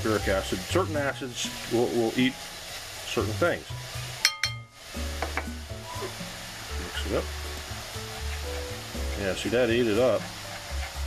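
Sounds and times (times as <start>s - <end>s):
baking soda fizzing: 0.0s - 11.0s
metal cup clinking into glass bowl: 4.2s - 5.5s.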